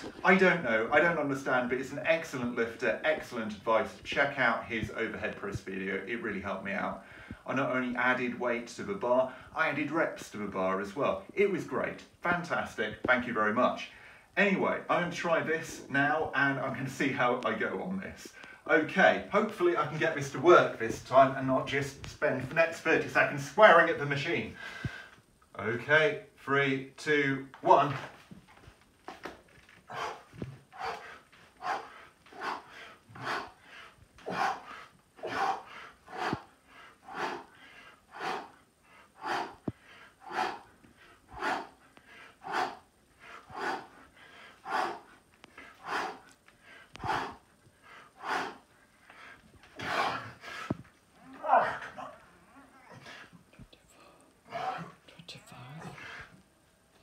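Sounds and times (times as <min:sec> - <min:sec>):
man breathing hard: 0:07.0 - 0:07.5, 0:24.6 - 0:25.2, 0:29.8 - 0:50.9.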